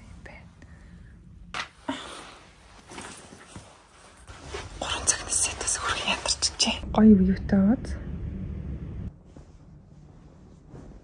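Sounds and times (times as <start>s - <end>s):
person whispering: 4.8s - 6.8s.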